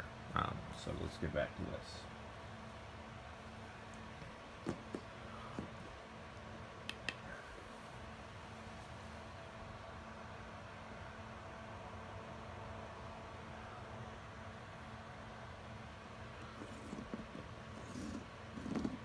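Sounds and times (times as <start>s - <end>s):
faint room hum: 0.0s - 19.0s.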